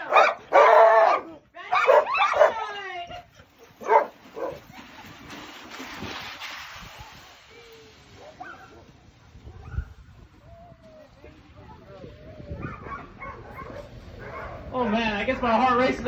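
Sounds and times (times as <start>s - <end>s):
sled dogs yelping and barking: 0.0s - 2.7s, 3.4s - 5.8s, 8.0s - 11.2s, 12.0s - 14.7s.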